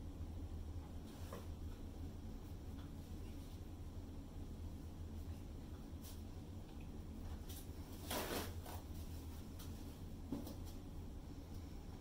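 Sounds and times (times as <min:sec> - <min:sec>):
steady low hum: 0:00.0 - 0:12.0
rustling scrape: 0:07.3 - 0:10.8.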